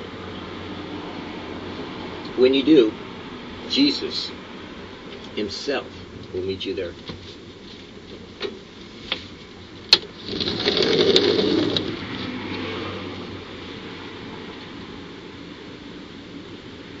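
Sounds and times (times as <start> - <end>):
vehicle passing by: 0.0 - 3.4, 10.7 - 14.5.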